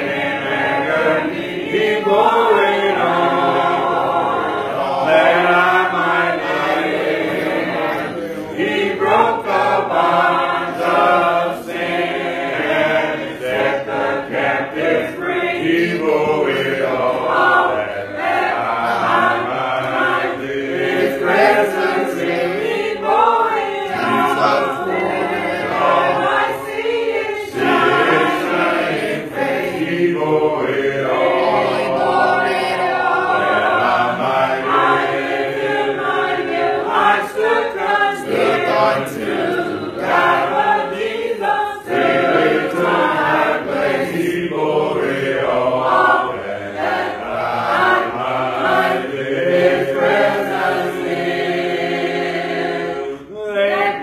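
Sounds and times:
congregation singing a hymn: 0.0 - 54.0.

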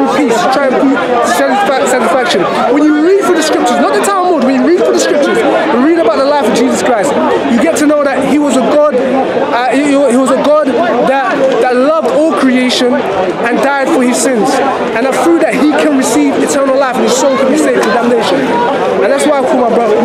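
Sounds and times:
man talking: 0.0 - 20.0.

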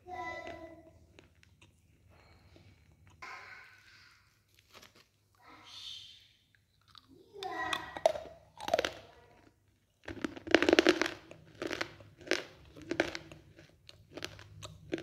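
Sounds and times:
crunching chews: 0.4 - 3.2, 4.5 - 5.2, 6.5 - 15.0
wet mouth sounds: 6.6 - 9.1, 10.0 - 15.0.

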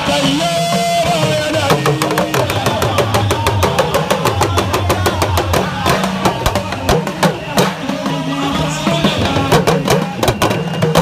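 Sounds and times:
man speaking over loudspeaker: 0.0 - 3.3, 4.3 - 10.3
hand drums fast rhythm: 0.0 - 11.0.

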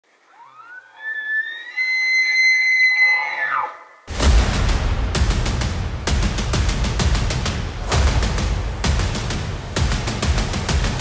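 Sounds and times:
elk bugling: 0.1 - 4.0
loud music with heavy beat: 4.1 - 11.0.

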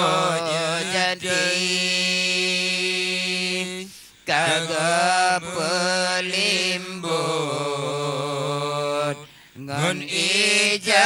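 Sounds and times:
men chanting into microphones: 0.0 - 11.0.

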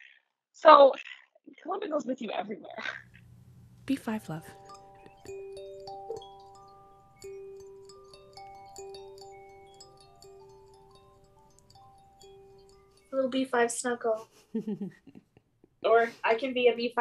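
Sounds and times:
kalimbas plucked softly: 4.2 - 13.1.

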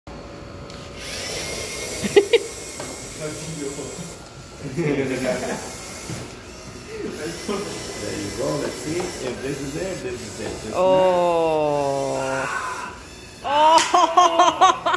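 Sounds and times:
steady background hum: 0.1 - 14.9
electric motors whining: 0.2 - 14.9
person laughing: 2.0 - 2.6, 13.5 - 14.9
person exclaiming ohh: 10.8 - 14.7.

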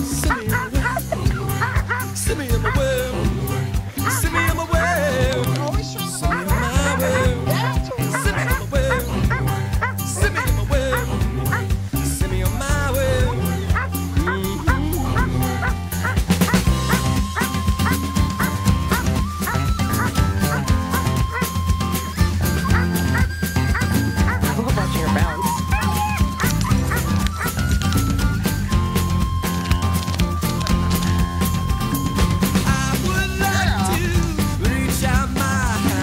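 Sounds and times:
upbeat acoustic rock song: 0.0 - 36.0.

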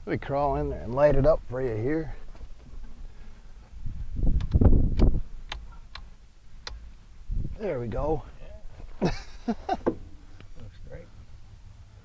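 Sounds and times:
bumps and shuffling: 0.0 - 12.0.

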